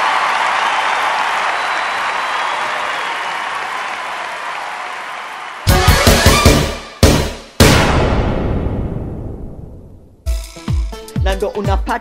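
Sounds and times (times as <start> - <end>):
crowd applause: 0.0 - 6.6.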